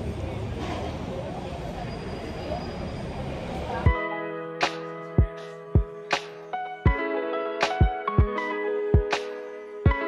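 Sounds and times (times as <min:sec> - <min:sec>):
faint background voices: 0:00.0 - 0:06.9
guitar music: 0:03.9 - 0:10.0.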